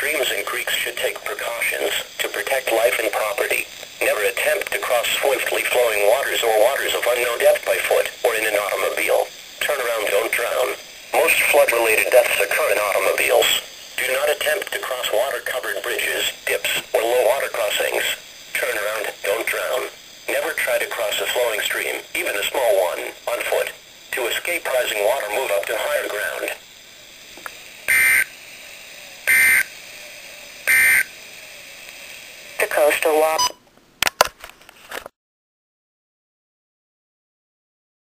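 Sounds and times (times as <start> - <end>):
electronic data bursts: 0.0 - 26.6, 27.8 - 28.4, 29.2 - 29.8, 30.6 - 31.2
person reading over radio: 0.0 - 26.6, 32.6 - 33.5.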